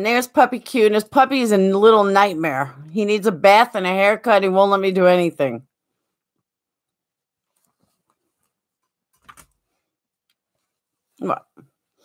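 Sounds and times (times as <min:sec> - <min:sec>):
faint rustling: 0:05.8 - 0:11.2.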